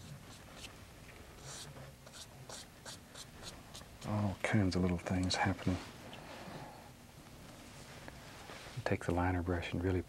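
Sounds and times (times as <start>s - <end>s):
paint brush scratching on canvas: 0.0s - 0.7s, 1.4s - 4.1s.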